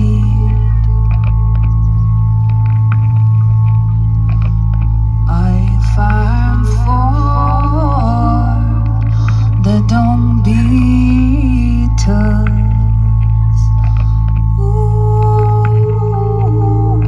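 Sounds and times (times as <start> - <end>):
ambient drone music: 0.0 - 17.0
faint clicks: 0.0 - 17.0.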